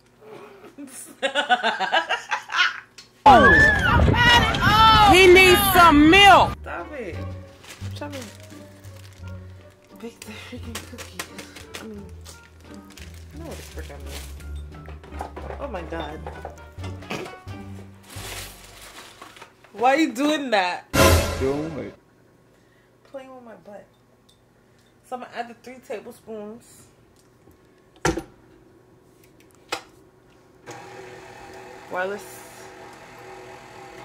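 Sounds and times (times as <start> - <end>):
stand mixer motor humming: 30.7 - 34.0.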